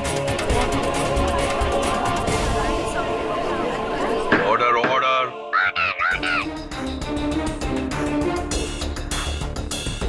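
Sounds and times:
parakeet squawking: 5.6s - 6.5s.

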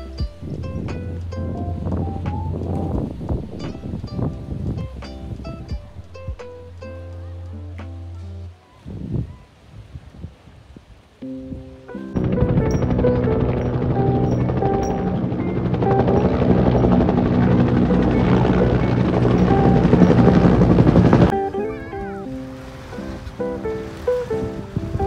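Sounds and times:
guitar background music: 0.0s - 8.5s, 11.2s - 25.0s
helicopter rotor thrum: 12.2s - 21.3s.

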